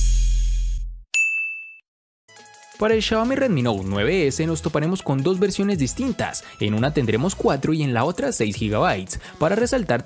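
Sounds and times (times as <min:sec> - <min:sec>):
bright ding: 0:01.2 - 0:01.8
faint background music: 0:02.7 - 0:10.0.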